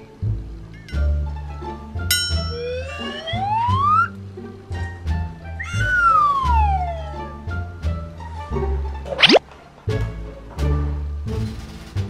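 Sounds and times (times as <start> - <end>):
music with plucked bass line: 0.2 - 11.5
whistle sliding down: 2.5 - 4.2, 5.6 - 7.2, 9.1 - 9.4
whistle sliding upward: 2.5 - 4.2, 5.6 - 7.2, 9.1 - 9.4.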